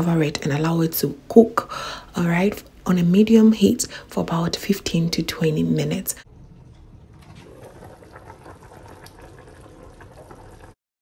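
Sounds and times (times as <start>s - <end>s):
soup bubbling in a pot: 6.8s - 10.8s.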